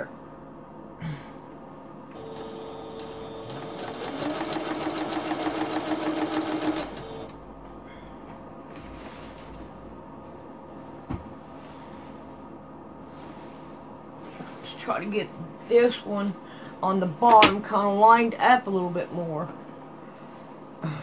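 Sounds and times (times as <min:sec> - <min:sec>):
sewing machine stitching: 0:02.2 - 0:07.4.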